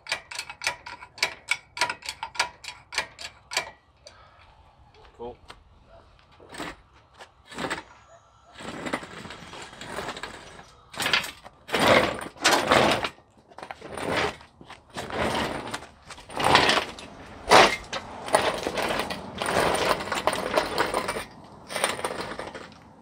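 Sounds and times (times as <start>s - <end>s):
engine hoist scraping and clunking: 0.0s - 4.6s, 6.2s - 23.0s.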